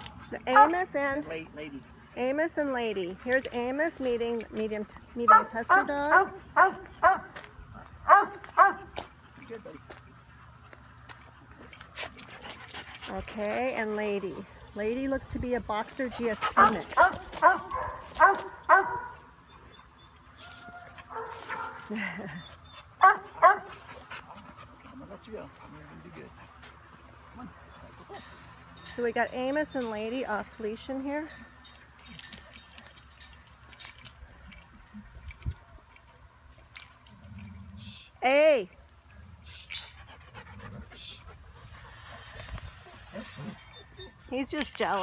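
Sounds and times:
dog barking: 5.3 - 7.3, 8.1 - 8.9, 16.6 - 19.2, 23.0 - 23.7
dog panting: 8.6 - 15.1, 15.8 - 18.0, 21.0 - 28.2, 39.5 - 45.0.

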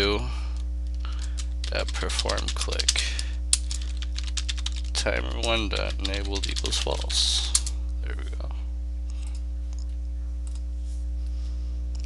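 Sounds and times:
low electrical hum: 0.0 - 12.0
computer keyboard typing: 0.8 - 7.7.

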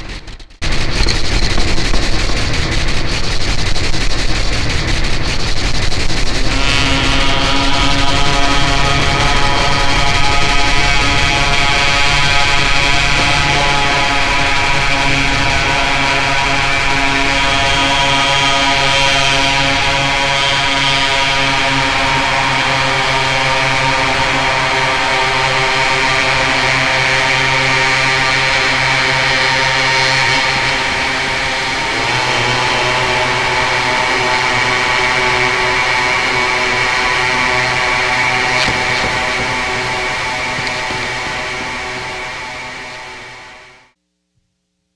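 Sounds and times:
buzzing electronic drone: 0.0 - 44.0.

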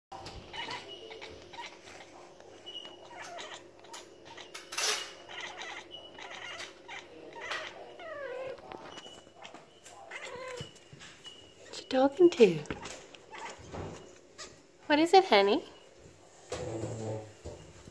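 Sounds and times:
cat chattering and chirping: 0.2 - 14.6.

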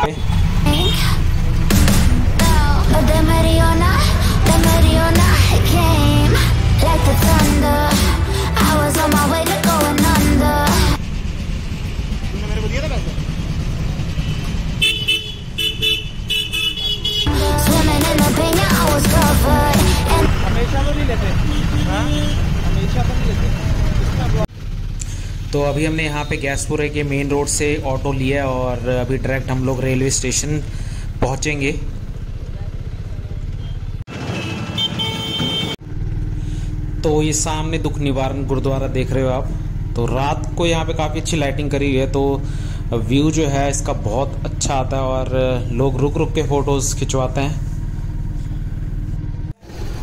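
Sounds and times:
street traffic rumble: 0.0 - 50.0
music: 0.9 - 11.0, 17.3 - 20.5
vehicle horn honking: 14.2 - 17.5, 20.2 - 22.8, 33.6 - 35.8.

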